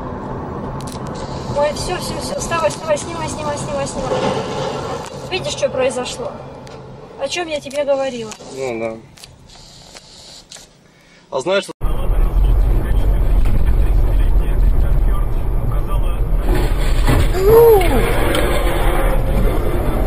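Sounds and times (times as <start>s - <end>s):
car driving rumble: 11.8s - 20.0s.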